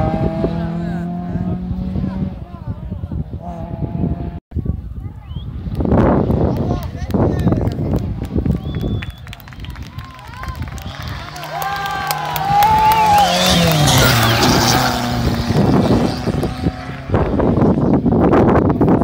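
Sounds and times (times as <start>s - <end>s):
car engine revving past: 0.0s - 2.5s, 11.0s - 18.0s
wind buffeting microphone: 0.0s - 19.0s.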